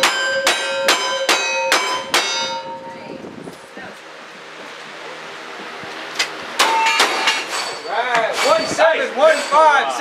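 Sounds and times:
steel targets clanging: 0:00.0 - 0:02.8, 0:06.6 - 0:10.0
voices: 0:02.7 - 0:05.4, 0:07.6 - 0:10.0.

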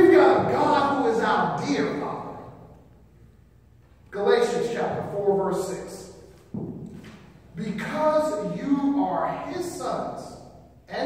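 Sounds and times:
man preaching: 0:00.0 - 0:02.6, 0:04.1 - 0:06.3, 0:07.5 - 0:11.0.

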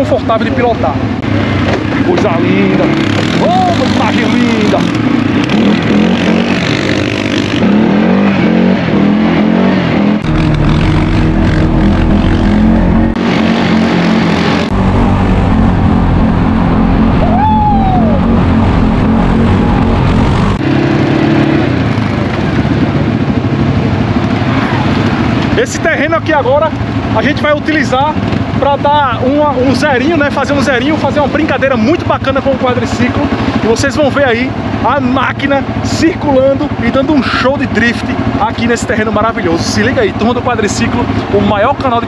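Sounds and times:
atv engine revving: 0:00.0 - 0:42.0.

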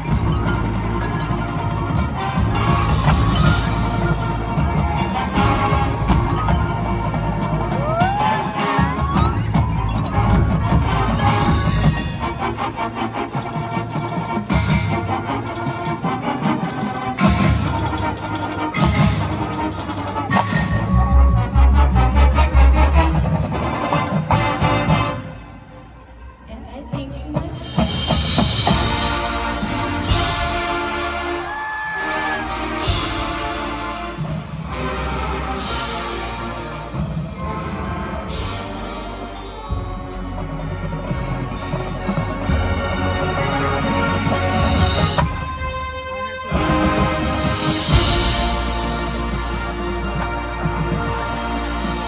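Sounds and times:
mallet percussion: 0:00.0 - 0:25.1, 0:26.9 - 0:52.0
marching band brass: 0:00.0 - 0:26.1, 0:27.4 - 0:52.0
drumline: 0:00.0 - 0:52.0.

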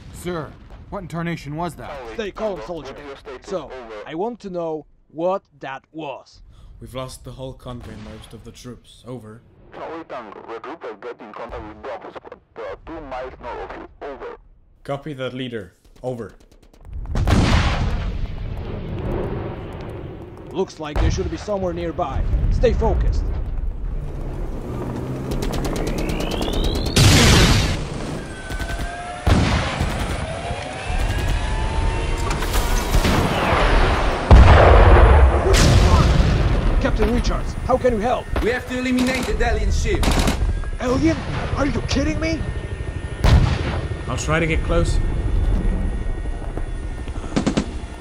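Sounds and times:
heavy explosion booms: 0:00.0 - 0:01.3, 0:16.9 - 0:20.2, 0:21.0 - 0:24.0, 0:26.5 - 0:28.5, 0:29.2 - 0:38.6, 0:39.6 - 0:42.4, 0:43.2 - 0:46.0
rapid gunfire: 0:15.8 - 0:18.4, 0:25.2 - 0:31.7, 0:40.0 - 0:40.5, 0:47.3 - 0:47.8
low rumble: 0:16.8 - 0:28.5, 0:30.9 - 0:48.0
rising and falling whines: 0:23.7 - 0:34.4, 0:41.6 - 0:48.0.

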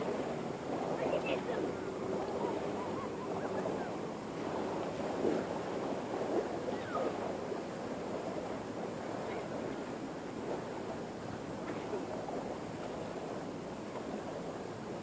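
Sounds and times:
faint distant voices: 0:00.0 - 0:14.1
wind buffeting microphone: 0:00.0 - 0:15.0.

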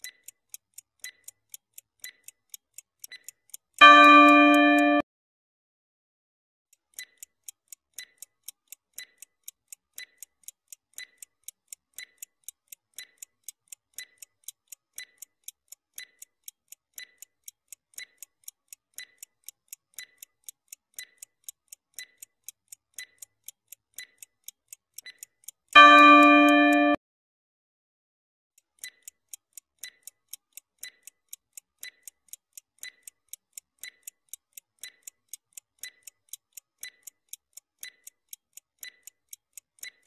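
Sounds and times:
clock ticking: 0:00.0 - 0:05.0, 0:06.7 - 0:27.0, 0:28.6 - 0:40.0.

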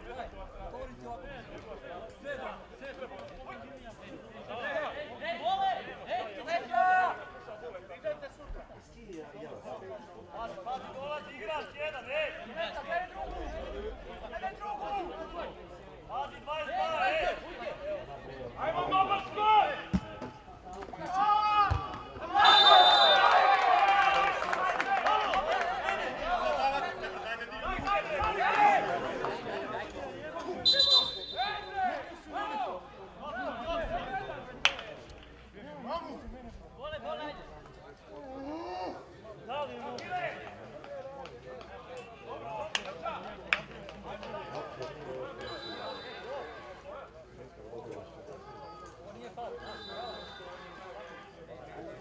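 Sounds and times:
men shouting and talking outdoors: 0:00.0 - 0:52.0.

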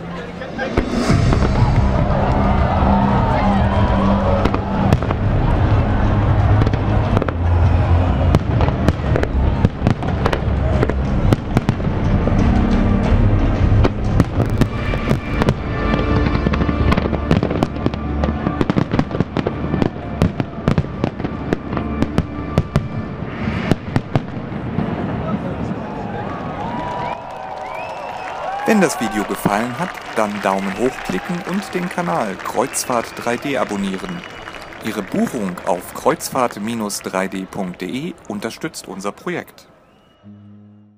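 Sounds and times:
fireworks bangs and crackling: 0:00.5 - 0:12.6, 0:13.5 - 0:27.2, 0:27.8 - 0:38.5.

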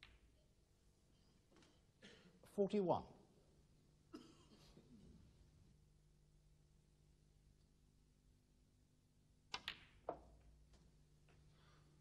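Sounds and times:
snooker balls clicking: 0:00.0 - 0:00.5, 0:09.5 - 0:11.4.

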